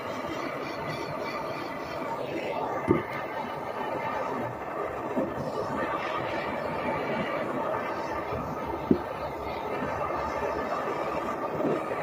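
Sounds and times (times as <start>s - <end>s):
gas torch burning: 0.0s - 12.0s.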